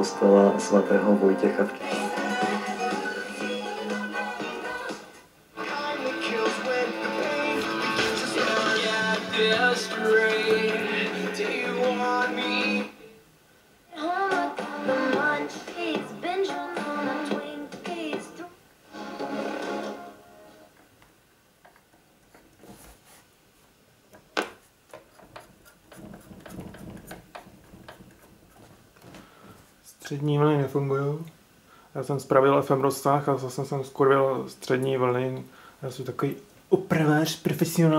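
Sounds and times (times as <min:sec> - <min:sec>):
music from radio loudspeaker: 0:00.0 - 0:13.2, 0:13.9 - 0:20.7
radio singing snatches: 0:01.5 - 0:13.1.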